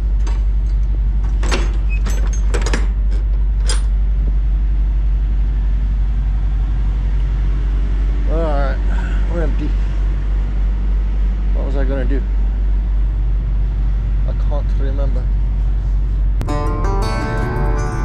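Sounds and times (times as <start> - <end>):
diesel engine idling: 3.4 - 18.0.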